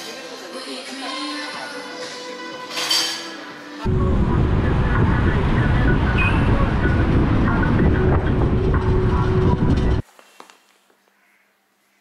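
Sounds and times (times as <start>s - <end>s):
road noise: 3.8s - 10.0s
wind rumble on microphone: 3.9s - 10.0s.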